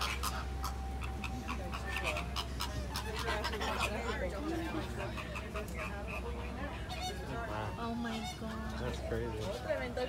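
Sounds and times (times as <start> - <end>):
voices of passengers: 0.0 - 10.0.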